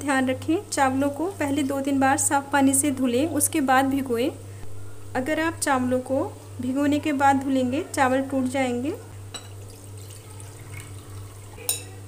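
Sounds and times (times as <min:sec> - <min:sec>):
glass clink: 0:09.3 - 0:10.2, 0:11.6 - 0:12.0
water trickling into a bowl: 0:09.4 - 0:12.0.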